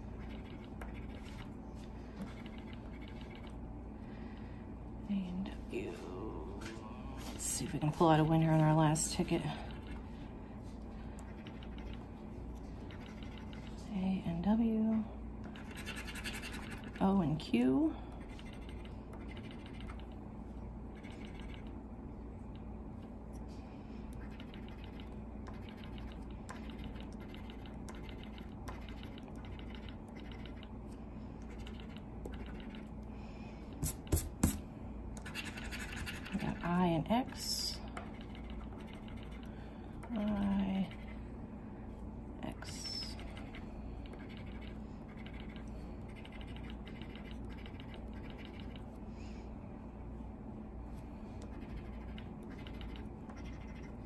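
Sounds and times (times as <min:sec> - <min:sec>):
coin scraping scratch card: 0:15.6 - 0:16.9.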